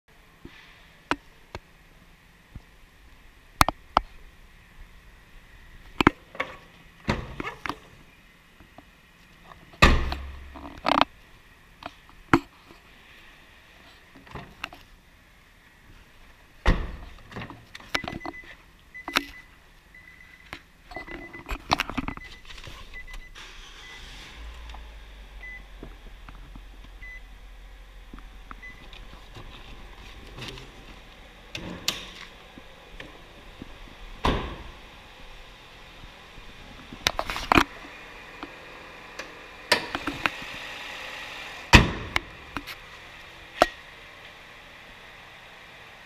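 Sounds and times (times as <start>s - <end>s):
low steady rumble: 0.1s - 40.7s
car hood slamming shut: 9.8s - 10.5s, 34.2s - 34.7s, 41.7s - 42.2s
car warning chime beeps: 18.0s - 24.1s, 25.4s - 25.7s, 27.0s - 27.3s, 28.6s - 28.9s.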